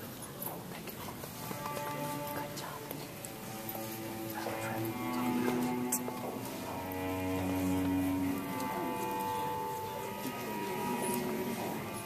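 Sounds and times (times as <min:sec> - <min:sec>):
soft violin music: 0:01.2 - 0:12.0.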